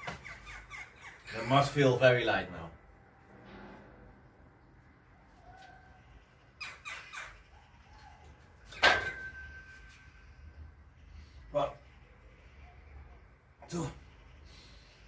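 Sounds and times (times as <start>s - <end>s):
loud metal clank: 8.8s - 9.6s.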